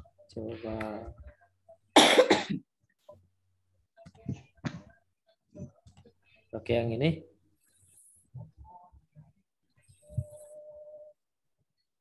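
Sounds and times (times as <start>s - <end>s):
person coughing: 2.0s - 2.7s.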